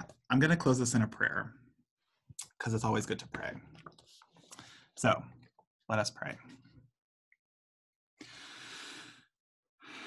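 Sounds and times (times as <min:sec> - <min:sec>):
person breathing deeply: 0:08.2 - 0:10.0.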